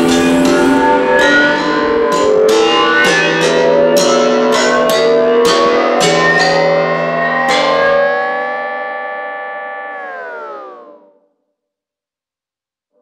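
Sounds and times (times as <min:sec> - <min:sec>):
held guitar chord: 0:00.0 - 0:08.7
plucked guitar notes: 0:00.0 - 0:11.1.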